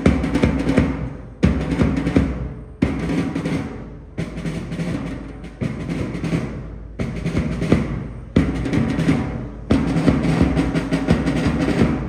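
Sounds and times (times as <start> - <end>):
rapid drum strokes: 0.0 - 12.0.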